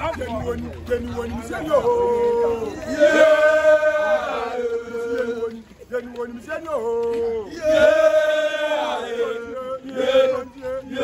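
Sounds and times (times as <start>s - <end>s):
group chanting in unison: 2.8s - 5.6s, 7.3s - 11.0s.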